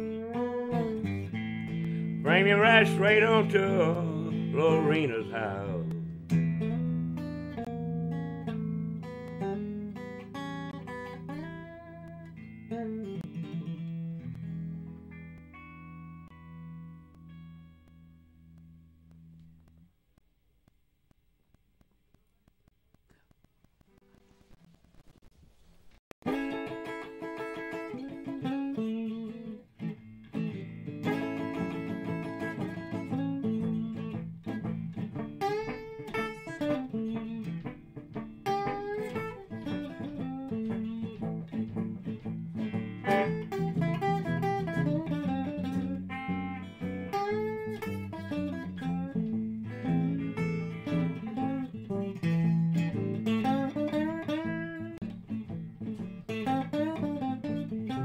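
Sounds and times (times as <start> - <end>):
electric guitar lead with bent notes: 0.0 - 19.9, 26.2 - 58.0.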